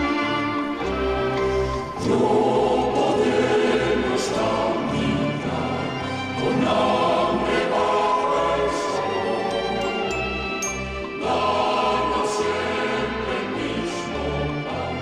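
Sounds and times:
choir singing a hymn: 0.9s - 15.0s
instrumental accompaniment: 4.3s - 15.0s.

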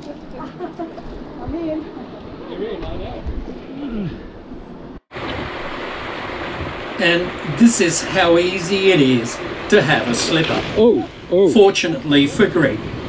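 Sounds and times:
steady rushing noise: 1.0s - 13.0s.

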